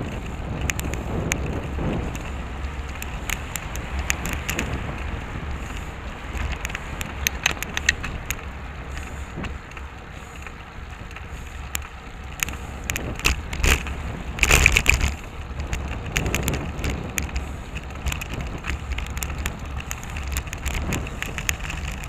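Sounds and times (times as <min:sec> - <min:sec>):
bike clicks and rattles: 0:00.0 - 0:22.0
traffic: 0:00.0 - 0:22.0
wind rumble on microphone: 0:00.0 - 0:22.0.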